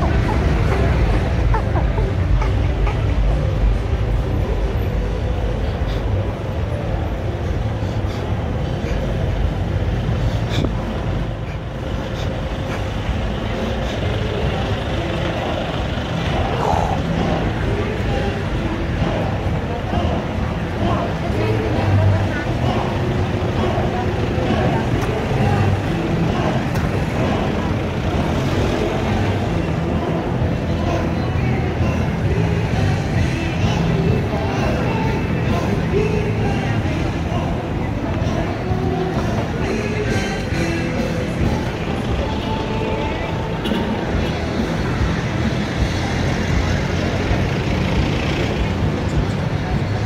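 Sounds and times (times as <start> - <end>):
indistinct voices: 0.0 - 50.0
road traffic: 0.0 - 50.0
vehicles passing close by: 0.0 - 50.0.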